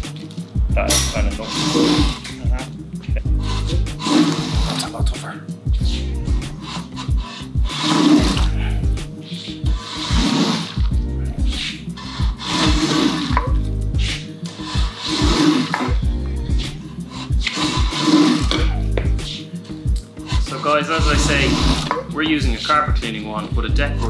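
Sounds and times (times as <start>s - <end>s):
background music with beat: 0.0s - 24.0s
wet swishing wand strokes: 3.4s - 22.0s.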